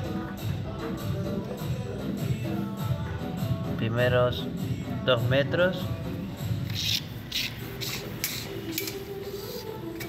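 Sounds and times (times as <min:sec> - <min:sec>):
tape measure blade rasping: 0:06.7 - 0:10.0.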